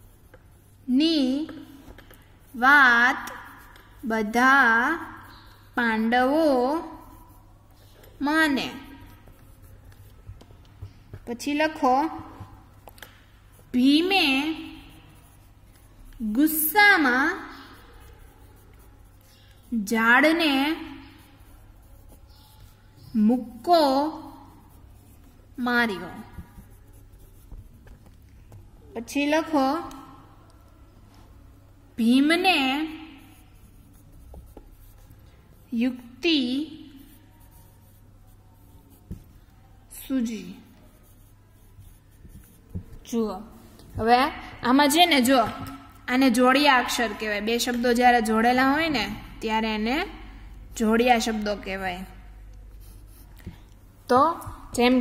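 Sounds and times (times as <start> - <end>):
pen scratching on paper: 0.0 - 30.7, 32.0 - 55.0.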